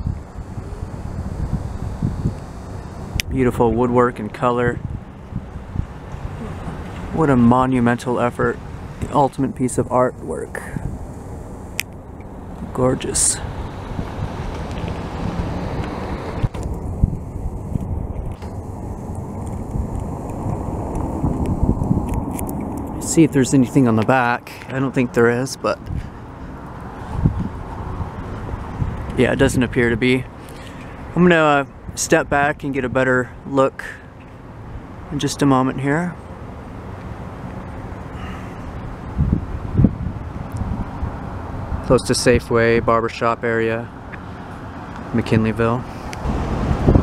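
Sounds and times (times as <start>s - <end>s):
wind on microphone: 0.0s - 33.4s, 36.9s - 43.2s, 43.8s - 47.0s
road traffic rumble: 0.0s - 47.0s.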